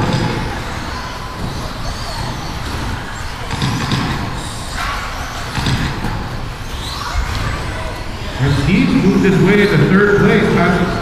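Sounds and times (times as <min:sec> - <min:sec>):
electric rc cars running: 0:00.0 - 0:11.0
indistinct voices: 0:00.0 - 0:11.0.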